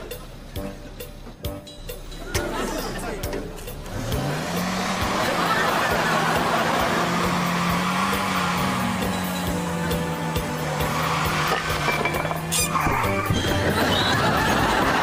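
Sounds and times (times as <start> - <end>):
car engine revving: 3.7 - 13.7.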